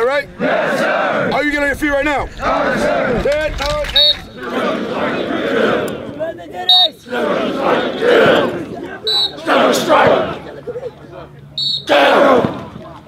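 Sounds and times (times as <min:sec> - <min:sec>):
group yelling battle cries: 0:00.4 - 0:01.4, 0:02.4 - 0:03.4, 0:04.3 - 0:06.1, 0:07.0 - 0:10.5, 0:11.8 - 0:12.8.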